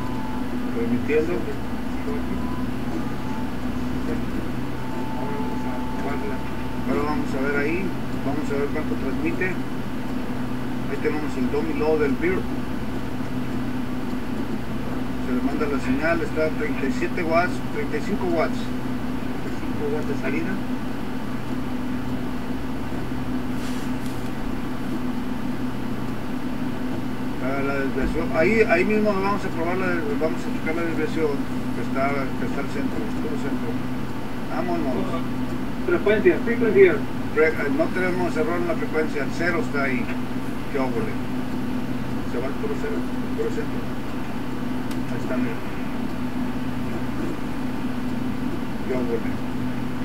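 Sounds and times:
low electrical hum: 0.0s - 50.0s.

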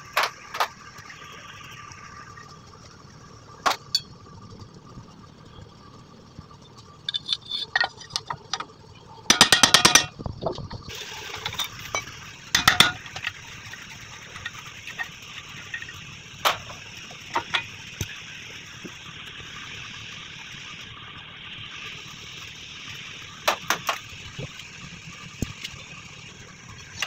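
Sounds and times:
ratchet wrench clicking: 7.1s - 8.6s
steady hiss: 10.9s - 27.0s.

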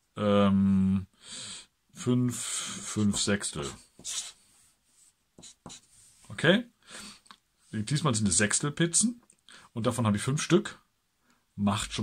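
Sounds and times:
marker writing on paper: 2.8s - 6.2s.

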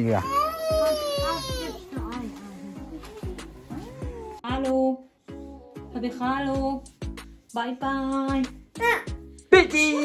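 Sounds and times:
young child crying: 0.1s - 1.9s, 8.8s - 9.2s.

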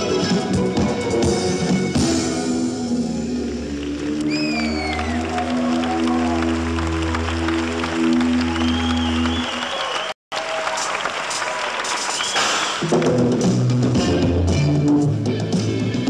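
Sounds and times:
audience applause: 3.4s - 13.2s
whistles: 4.2s - 5.5s, 8.1s - 10.2s, 11.9s - 12.8s.

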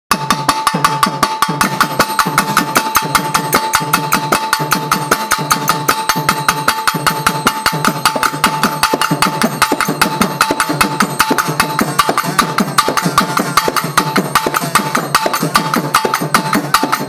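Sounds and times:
fast drum ensemble rhythm: 0.1s - 17.0s
steady ringing tone: 0.1s - 17.0s.

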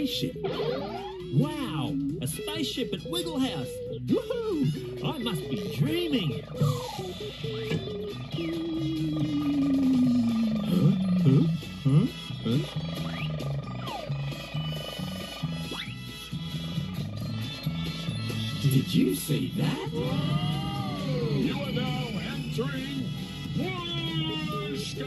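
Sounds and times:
cartoon sound effects: 0.0s - 16.0s, 18.6s - 22.9s
music with steady low beat: 6.2s - 19.0s
swooping rise-and-fall sounds: 6.3s - 11.6s.

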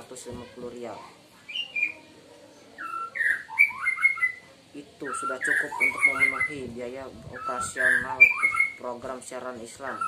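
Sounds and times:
bird chirping: 1.4s - 10.0s.

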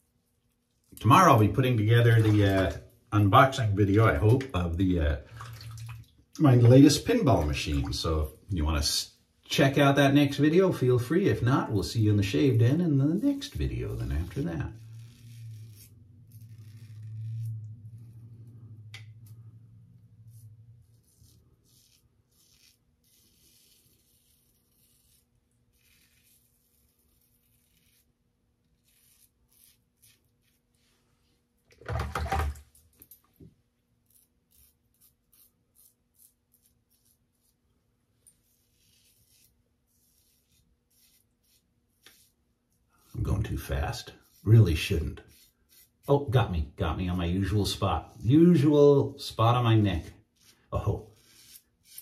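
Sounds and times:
razor scraping stubble: 11.7s - 18.5s, 20.2s - 30.8s, 34.0s - 37.6s, 38.2s - 52.0s.

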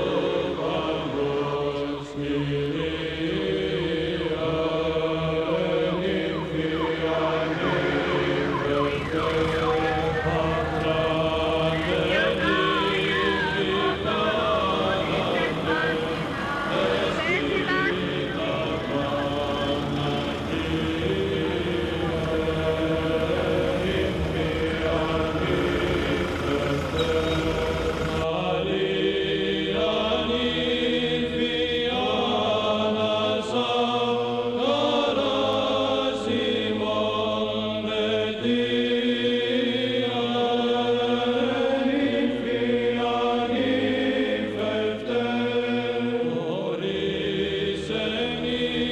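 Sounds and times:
choir chanting sustained notes: 0.0s - 48.9s
falling siren-like glides: 2.2s - 28.0s
low rumble: 4.8s - 28.2s
wavering high tone: 5.2s - 16.9s.

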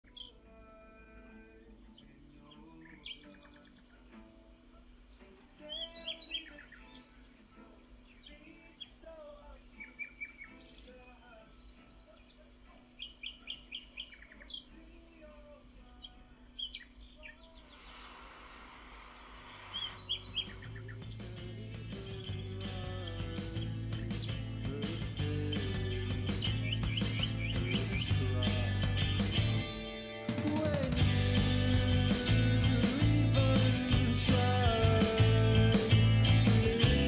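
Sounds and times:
birds chirping and trilling: 0.0s - 0.5s, 1.5s - 30.0s
faint low hum of music: 0.0s - 18.0s, 19.8s - 37.0s
soft hiss: 0.4s - 24.9s.

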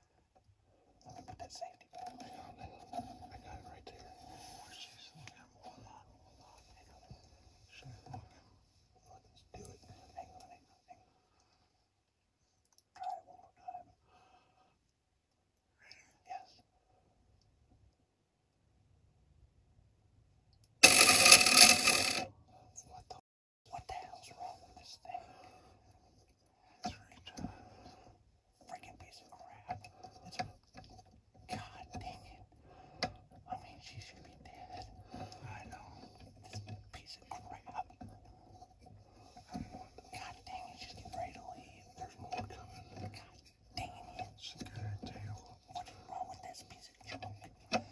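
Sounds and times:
people whispering: 1.2s - 8.4s, 9.0s - 11.0s, 22.8s - 25.4s, 28.6s - 30.4s, 31.5s - 32.4s, 33.4s - 38.1s, 39.4s - 47.6s.

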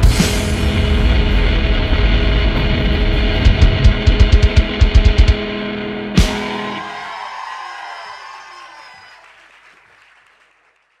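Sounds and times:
guitar chord ringing: 0.1s - 6.8s
audience applause: 6.4s - 11.0s.

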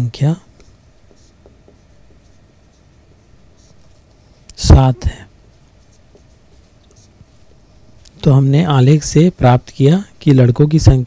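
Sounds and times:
marker pen writing on whiteboard: 0.4s - 7.9s.

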